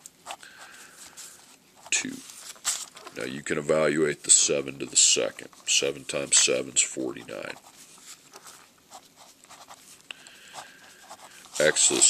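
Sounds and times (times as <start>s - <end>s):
pen scratching on paper: 8.9s - 9.9s, 10.6s - 12.0s.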